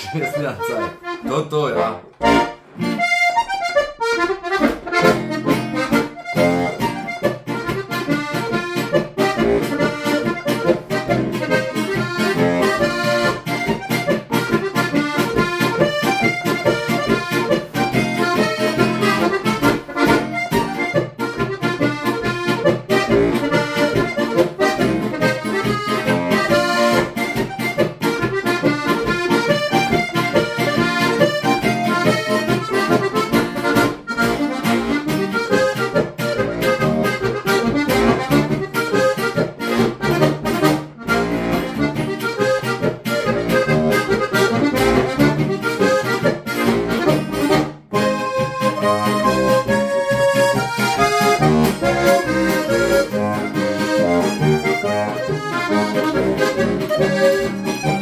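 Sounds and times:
button accordion folk tune: 0:00.0 - 0:58.0.

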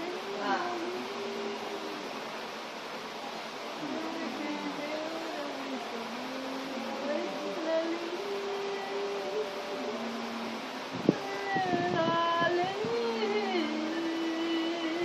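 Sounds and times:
faint voice with drawn-out tones: 0:00.0 - 0:02.4
steady hiss: 0:00.0 - 0:15.0.

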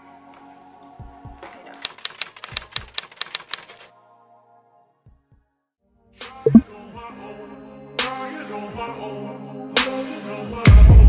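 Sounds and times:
typewriter key clicks: 0:01.8 - 0:03.8.

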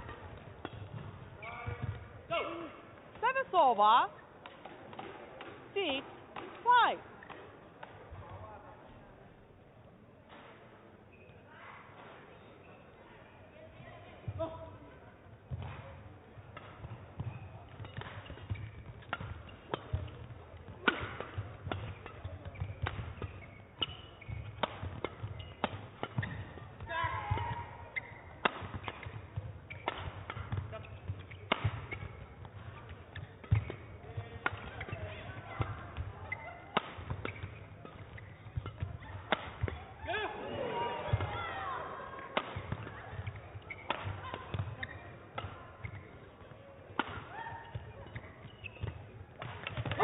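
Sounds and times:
rackets striking shuttlecock: 0:00.0 - 0:02.1, 0:04.4 - 0:08.3, 0:15.5 - 0:40.2, 0:42.2 - 0:50.0.

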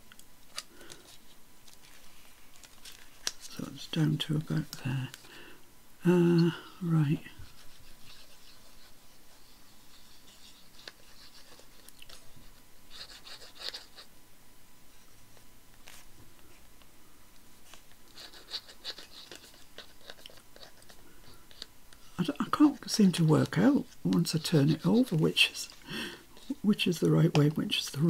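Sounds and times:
paper crinkling and rustling: 0:00.5 - 0:03.9, 0:15.3 - 0:16.6.

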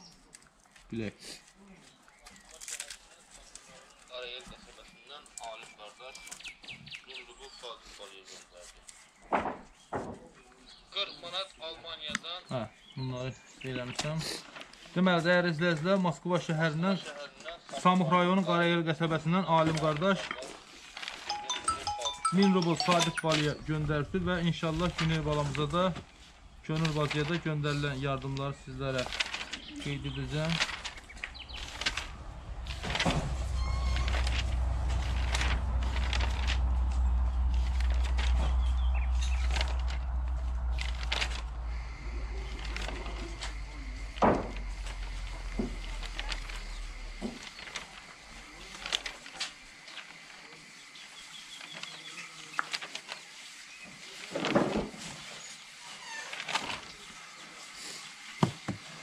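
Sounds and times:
low rumble: 0:30.2 - 0:49.1.

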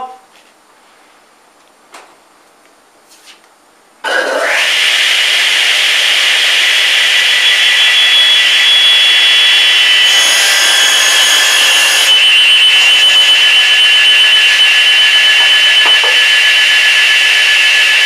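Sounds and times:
saw whining: 0:04.1 - 0:18.0
blade ringing cutting board: 0:10.0 - 0:17.4.

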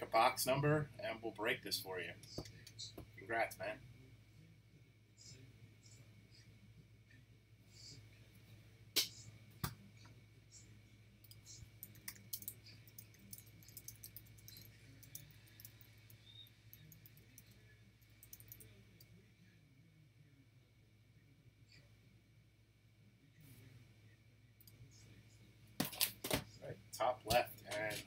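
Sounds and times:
keyboard typing: 0:11.2 - 0:18.7
mouse clicking: 0:11.2 - 0:18.7.

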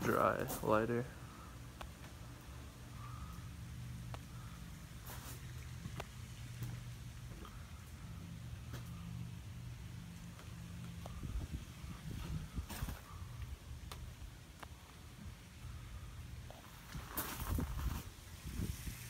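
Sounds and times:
low machine hum: 0:00.0 - 0:19.0
microphone handling rumble: 0:11.0 - 0:13.5, 0:16.5 - 0:19.0.

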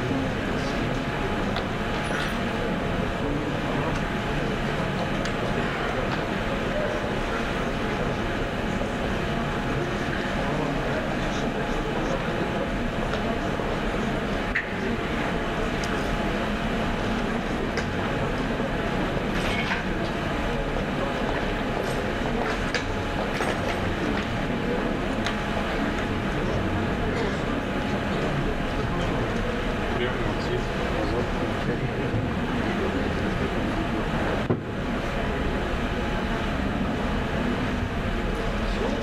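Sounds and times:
rumbling hall background noise: 0:00.0 - 0:39.0.

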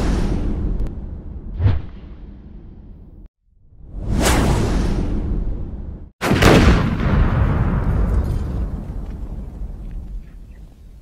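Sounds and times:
whoosh with deep rumble: 0:00.0 - 0:06.1.

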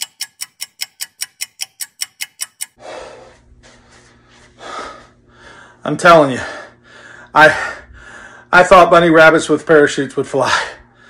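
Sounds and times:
clock ticking: 0:00.0 - 0:02.8.

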